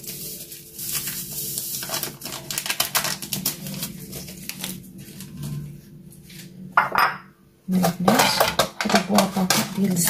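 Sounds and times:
paper sachet crinkling: 0:00.0 - 0:05.6.

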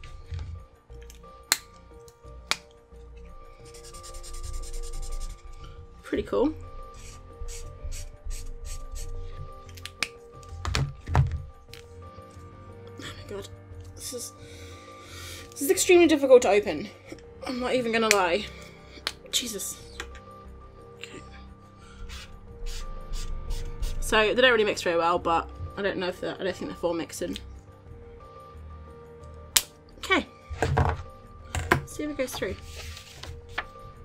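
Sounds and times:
soft background music: 0:00.0 - 0:34.0
marker scratching on paper: 0:03.6 - 0:05.6, 0:07.0 - 0:09.1, 0:22.0 - 0:24.0, 0:32.4 - 0:33.3.

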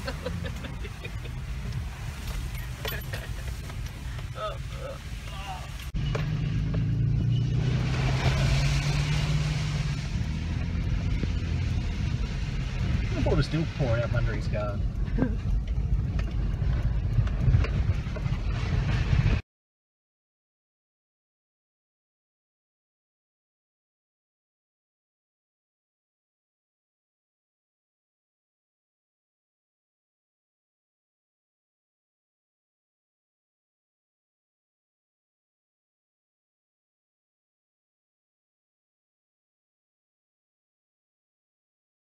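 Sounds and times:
engine and tyres rumbling: 0:00.0 - 0:19.4.

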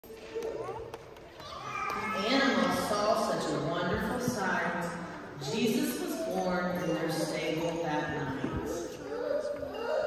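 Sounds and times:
children chattering and calling out: 0:00.0 - 0:03.6, 0:04.4 - 0:10.0.

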